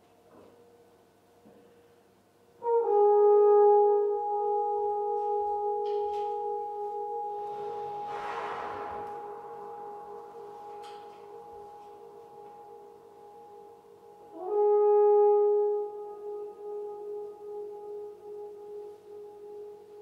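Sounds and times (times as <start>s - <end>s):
reverberant low horn tone: 2.6s - 20.0s
breathy hiss: 7.4s - 10.8s.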